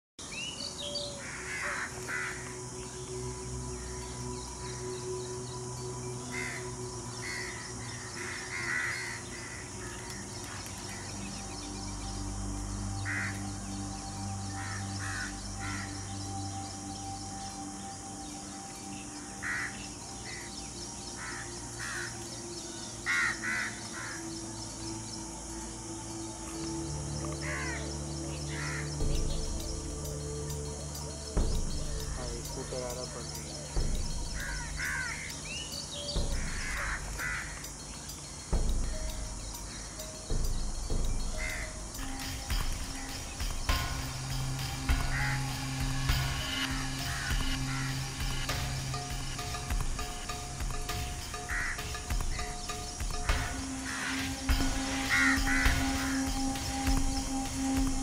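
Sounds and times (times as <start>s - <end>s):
background music low chords: 0.2s - 58.0s.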